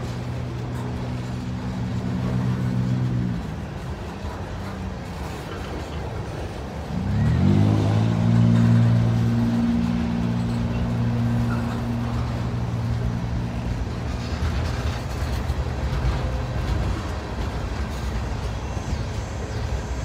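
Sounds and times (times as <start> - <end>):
engine drone: 0.0 - 20.0
freight train rolling on rails: 0.0 - 20.0.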